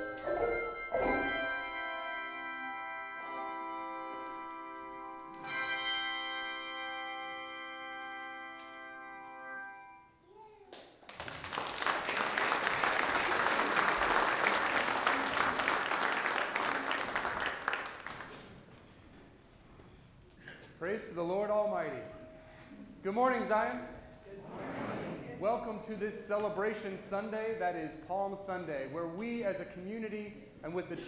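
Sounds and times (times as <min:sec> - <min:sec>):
handbell choir ringing: 0:00.0 - 0:04.3, 0:05.0 - 0:09.8
congregation applauding: 0:10.7 - 0:18.8.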